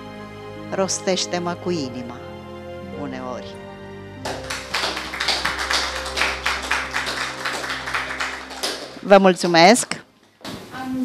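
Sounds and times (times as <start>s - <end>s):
soft instrumental music: 0.0s - 10.2s
audience applauding: 4.2s - 9.3s.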